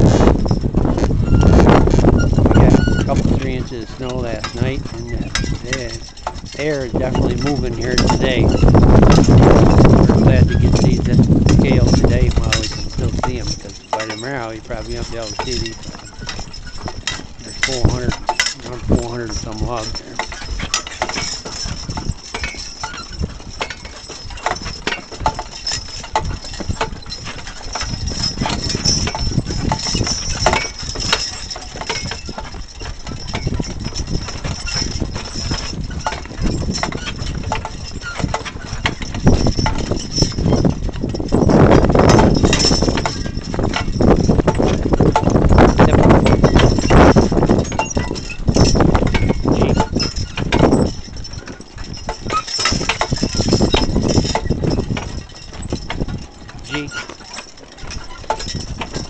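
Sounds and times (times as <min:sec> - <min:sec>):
harness chains jingling: 0:00.2 - 0:59.0.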